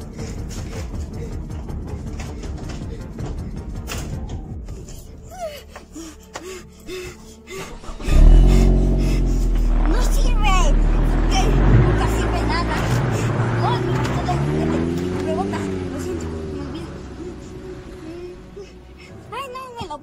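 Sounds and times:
truck engine starting and running: 0:07.5 - 0:19.8.

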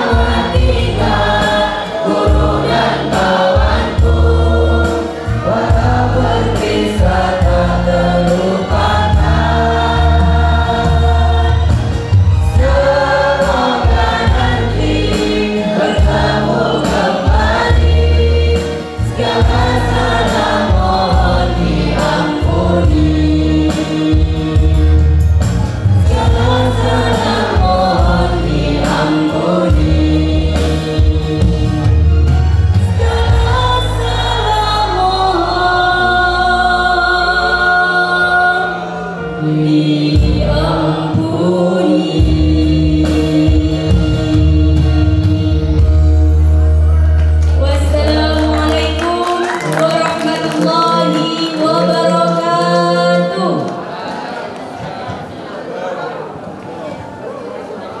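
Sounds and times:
group singing through pa system: 0:00.0 - 0:46.2, 0:47.6 - 0:56.9.

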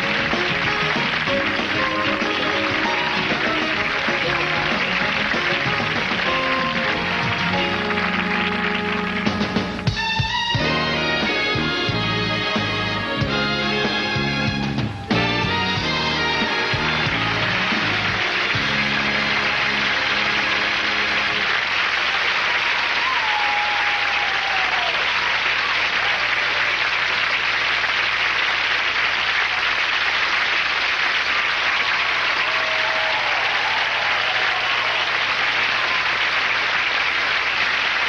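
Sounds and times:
band music: 0:00.0 - 0:22.4
audience applauding: 0:00.0 - 0:38.0
audience cheering: 0:00.0 - 0:38.0.

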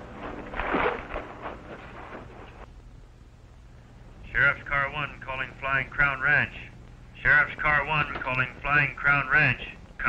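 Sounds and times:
scuffle shuffling and scraping: 0:00.0 - 0:02.7
faint low hum: 0:00.0 - 0:10.0.

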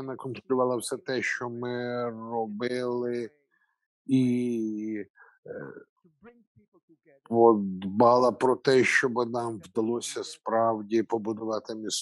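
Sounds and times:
man speaking faintly: 0:00.0 - 0:03.3, 0:04.1 - 0:05.8, 0:07.3 - 0:12.0.

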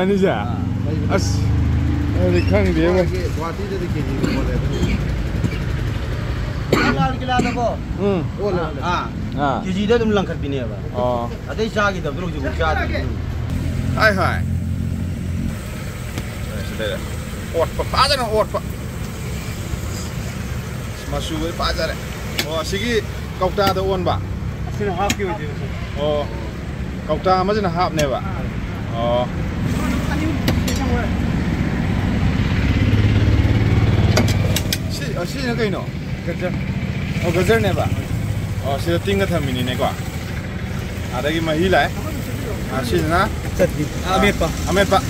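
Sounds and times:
street noise: 0:00.0 - 0:45.0
vehicle engine rumbling: 0:00.0 - 0:45.0.

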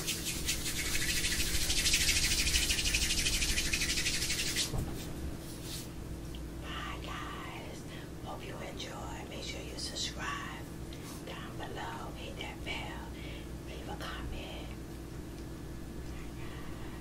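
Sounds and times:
steady low hum: 0:00.0 - 0:17.0
women whispering: 0:06.6 - 0:09.4.

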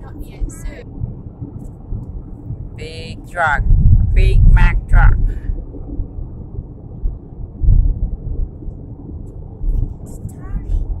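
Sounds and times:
road rumble inside car: 0:00.0 - 0:11.0.

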